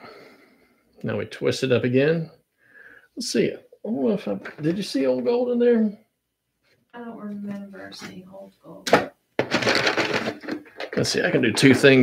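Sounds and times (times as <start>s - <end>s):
dense crackling and rustling: 7.6s - 12.0s.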